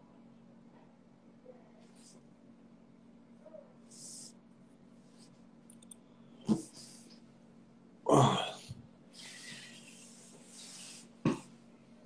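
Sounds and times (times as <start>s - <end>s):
man clearing his throat: 8.1s - 8.8s
soft breathing: 8.6s - 11.2s.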